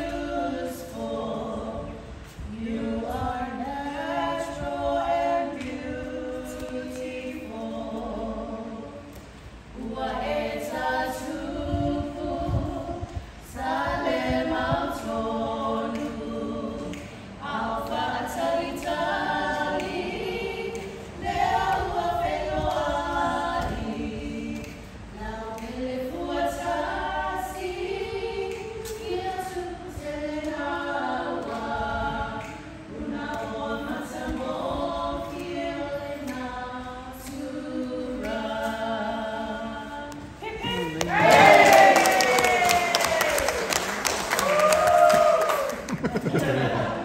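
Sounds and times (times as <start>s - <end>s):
women singing a cappella: 0.0s - 47.0s.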